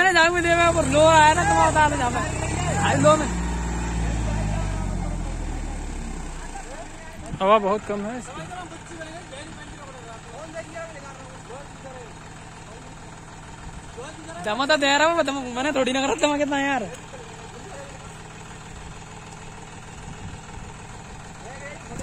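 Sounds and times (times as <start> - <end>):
men shouting: 0.0 - 8.9
tractor diesel engine labouring: 0.0 - 22.0.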